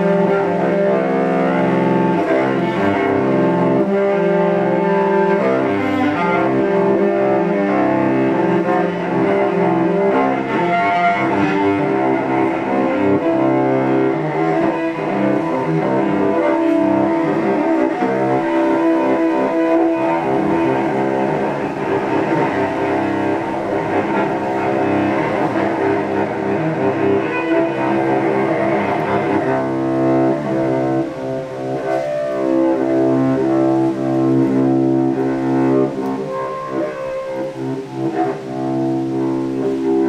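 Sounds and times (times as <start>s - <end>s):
bowed cello notes: 0.0s - 40.0s.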